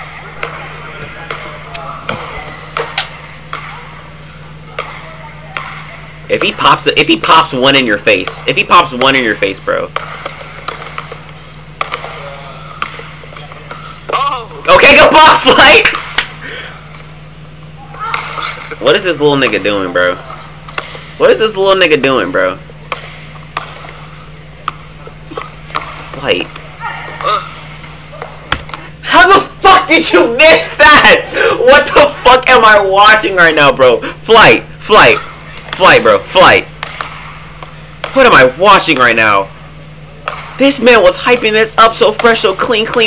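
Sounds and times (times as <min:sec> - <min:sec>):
steady low hum: 0:00.0 - 0:43.0
basketball bouncing on gym court: 0:00.3 - 0:06.8, 0:08.2 - 0:14.4, 0:15.8 - 0:18.9, 0:22.8 - 0:28.8, 0:36.7 - 0:39.1, 0:40.2 - 0:43.0
high squeak: 0:03.4 - 0:04.2, 0:09.5 - 0:10.9, 0:16.3 - 0:17.4.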